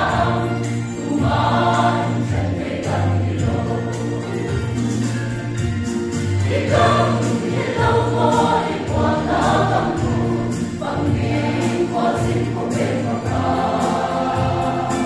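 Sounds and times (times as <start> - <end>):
mixed choir singing gospel: 0.0 - 15.0.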